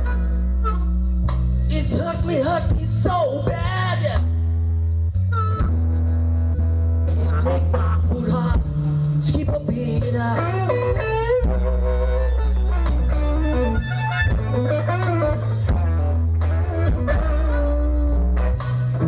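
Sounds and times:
harmonica: 0.0 - 2.6, 4.6 - 9.2, 10.4 - 19.0
drum kit: 0.0 - 19.0
electric guitar: 0.0 - 19.0
held bass notes: 0.0 - 19.0.

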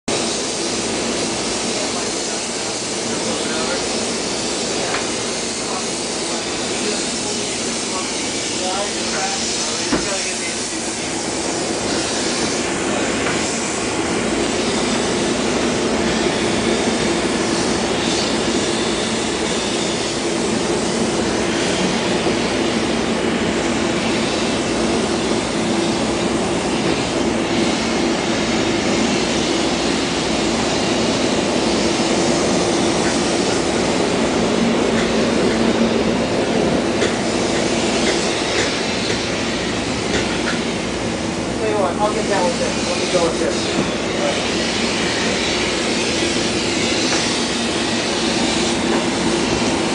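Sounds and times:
loud steam hiss: 0.1 - 49.9.

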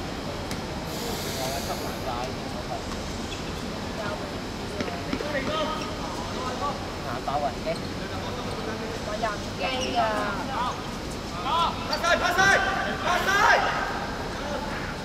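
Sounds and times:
distant people calling and talking: 0.0 - 15.0
outdoor background noise: 0.0 - 15.0
brief hiss: 0.9 - 2.1.

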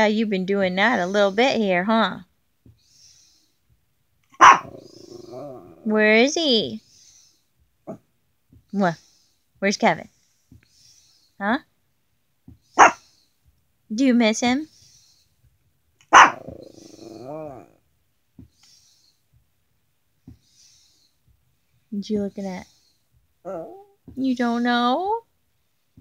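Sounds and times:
dog barking: 4.4 - 5.6, 12.8 - 13.0, 16.1 - 17.3
dog growling: 4.4 - 6.0, 16.1 - 17.8, 23.4 - 23.9.

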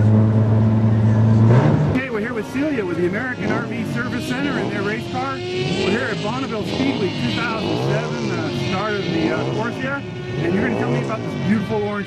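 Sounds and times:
person talking: 2.0 - 12.0.

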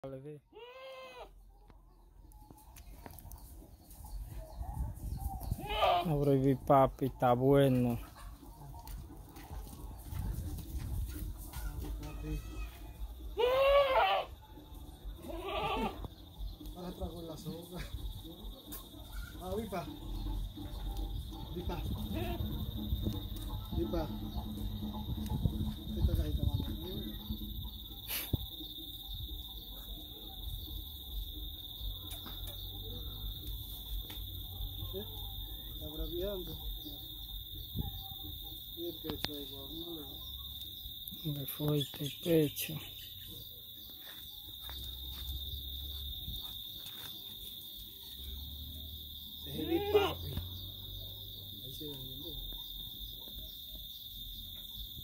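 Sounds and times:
goat bleating: 0.5 - 1.4, 5.6 - 6.1, 12.0 - 14.4, 15.2 - 16.1, 22.0 - 22.5, 49.6 - 50.3.

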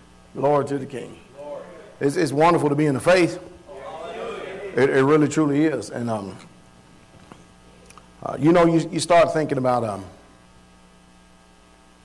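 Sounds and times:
low electrical mains hum: 0.0 - 12.0.

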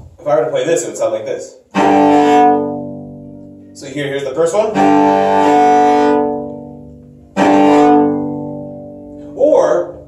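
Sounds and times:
bowed cello notes: 1.7 - 10.0.

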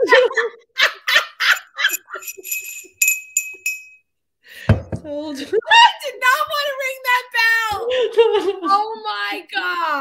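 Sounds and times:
woman laughing: 0.0 - 2.3
glass hand bell ringing: 1.9 - 4.0.

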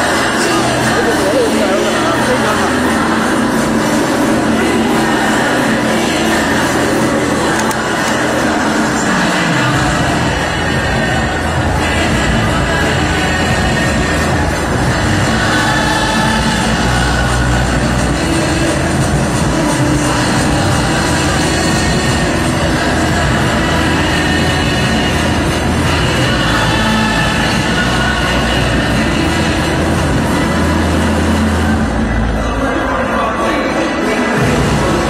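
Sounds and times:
dense background din: 0.0 - 35.0
loud music: 0.0 - 35.0.

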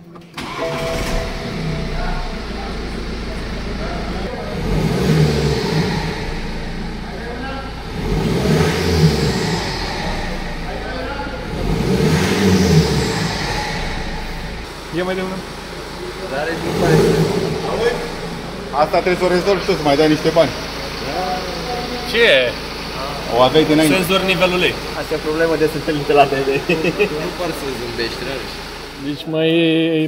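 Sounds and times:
diesel engine starting and idling: 0.0 - 30.0.

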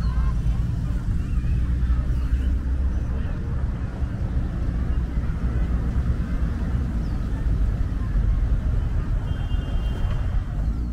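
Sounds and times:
low urban background rumble: 0.0 - 10.9.

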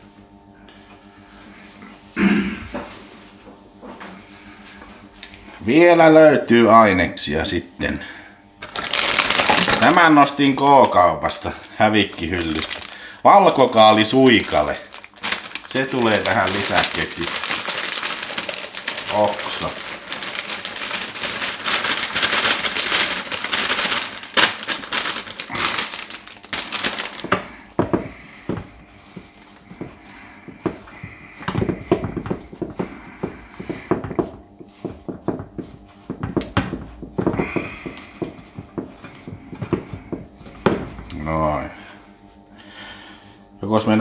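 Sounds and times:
cabbage rustling on tray: 8.6 - 27.6
plastic bag crinkling: 8.6 - 27.6.

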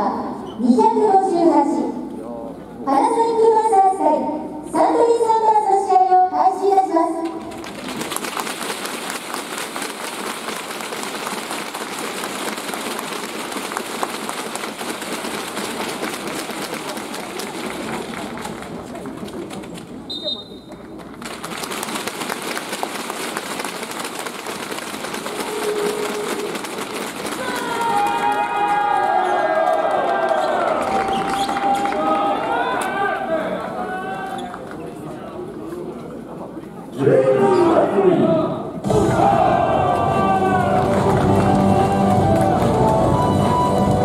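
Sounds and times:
crowd clapping: 7.3 - 33.0, 39.6 - 44.0.

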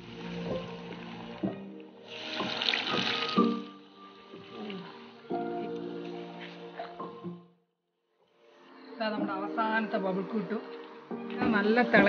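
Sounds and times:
hot oil sizzling and bubbling: 0.0 - 5.3
background music: 0.0 - 12.0.

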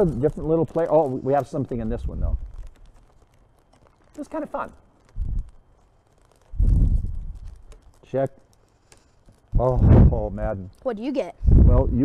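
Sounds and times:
dull low thumps: 6.6 - 7.6, 9.5 - 10.4, 11.4 - 12.0.

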